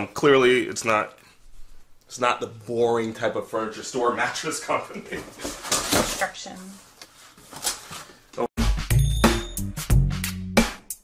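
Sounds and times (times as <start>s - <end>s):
cardboard rustling and knocking: 5.1s - 6.3s
music with heavy bass beat: 8.6s - 11.0s.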